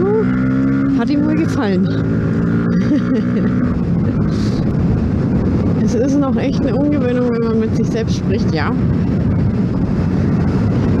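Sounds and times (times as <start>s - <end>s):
motorcycle engine running: 0.0s - 11.0s
wind rushing over microphone: 0.0s - 11.0s.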